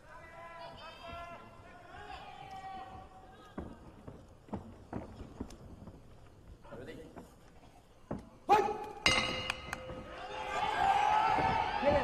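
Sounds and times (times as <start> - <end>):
crowd noise and shouts: 9.9 - 12.0.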